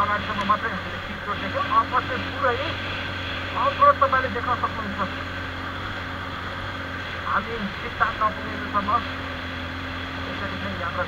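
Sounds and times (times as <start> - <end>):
motorcycle engine running: 0.0 - 11.0
tyre noise on dirt road: 0.0 - 11.0.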